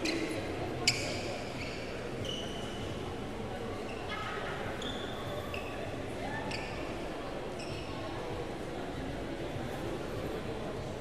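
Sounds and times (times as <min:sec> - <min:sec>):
shoes squeaking on court: 0:00.0 - 0:02.6.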